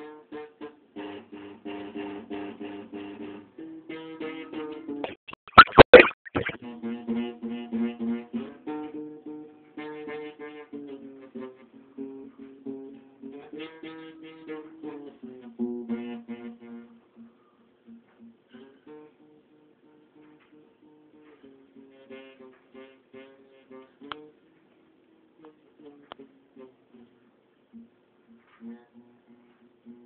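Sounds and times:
acoustic guitar plucked melody: 0.0 - 24.4, 25.4 - 30.0.

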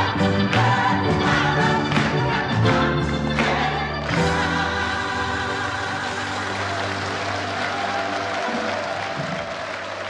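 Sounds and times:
gospel choir singing: 0.0 - 9.8.

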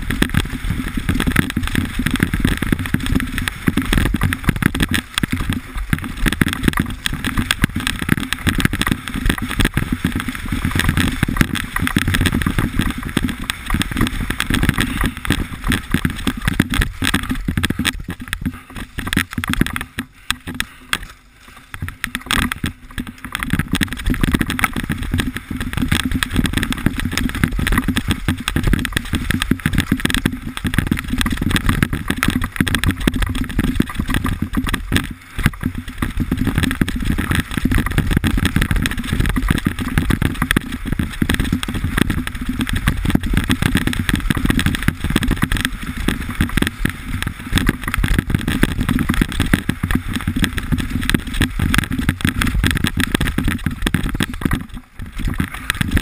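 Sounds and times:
wind rushing over microphone: 0.0 - 21.1, 21.7 - 56.0
bike jolts and rattles: 0.0 - 56.0
tyres rumbling on dirt: 0.0 - 56.0.

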